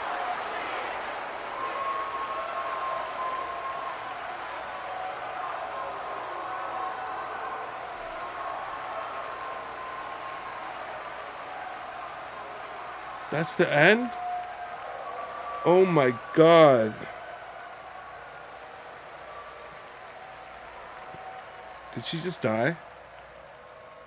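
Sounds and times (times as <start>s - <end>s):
audience applause: 0.0s - 24.0s.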